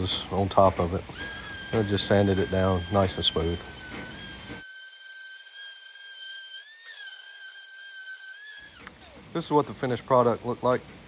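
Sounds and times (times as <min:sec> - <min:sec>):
orbital sander whining: 0:00.0 - 0:09.3.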